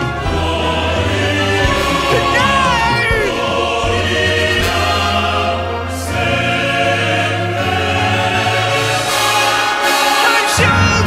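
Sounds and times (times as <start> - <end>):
choir singing held chords: 0.0 - 10.6
orchestral accompaniment: 0.0 - 10.6.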